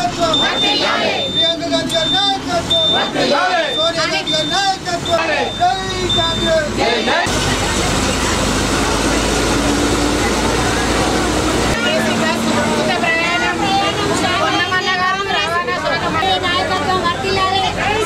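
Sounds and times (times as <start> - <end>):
bus engine rumble: 0.0 - 18.0
passengers chatting: 0.0 - 18.0.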